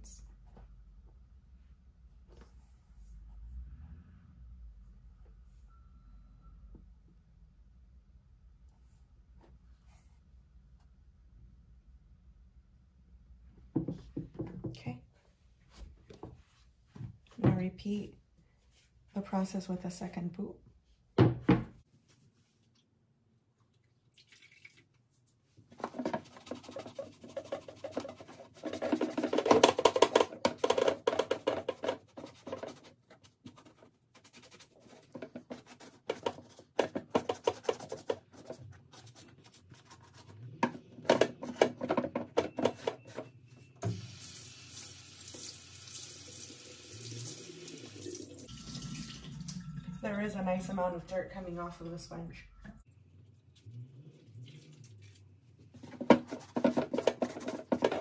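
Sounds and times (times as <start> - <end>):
wet sponge scrubbing leather: 26.2 - 29.0.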